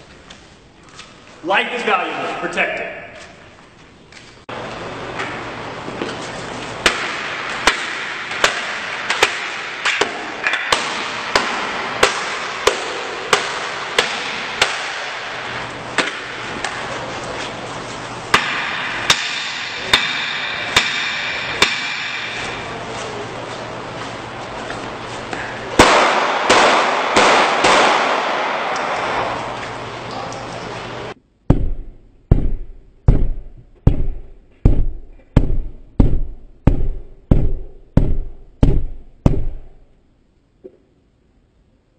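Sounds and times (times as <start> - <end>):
heavy low thuds on glass: 31.5 - 39.7.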